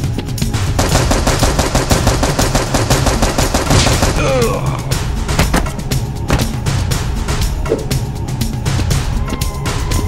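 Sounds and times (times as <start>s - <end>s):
action music: 0.0s - 10.0s
rapid machine-gun fire: 0.8s - 4.6s.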